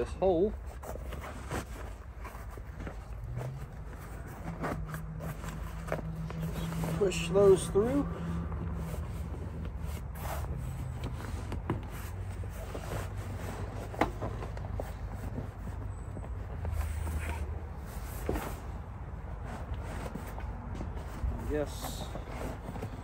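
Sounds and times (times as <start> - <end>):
cloth seat cover rustling: 0.3 - 23.0.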